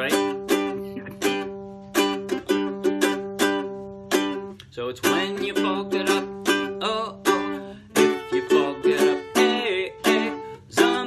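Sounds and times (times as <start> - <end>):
ukulele strumming: 0.0 - 11.0.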